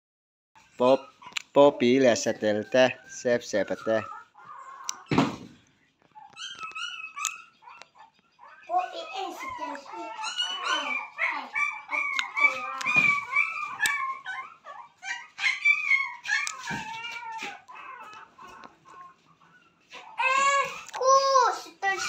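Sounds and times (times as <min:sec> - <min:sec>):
puppies whining and yelping: 0:00.6 - 0:22.0.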